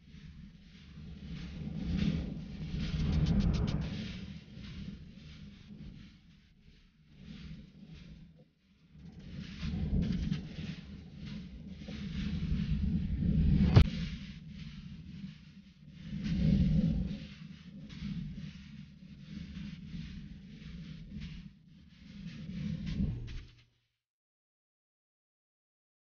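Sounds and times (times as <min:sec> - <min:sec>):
wind rumbling on microphone: 0:00.0 - 0:23.6.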